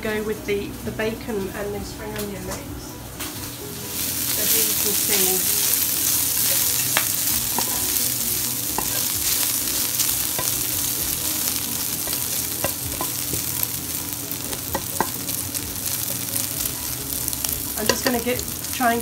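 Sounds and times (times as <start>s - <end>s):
bacon sizzling in frying pan: 3.4s - 19.0s
spatula scraping and tapping: 5.7s - 13.8s, 14.4s - 16.0s.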